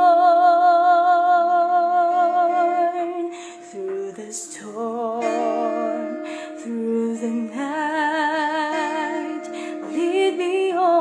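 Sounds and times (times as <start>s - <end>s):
woman singing a long note: 0.0s - 11.0s
short breath in: 3.3s - 3.7s, 9.5s - 9.8s.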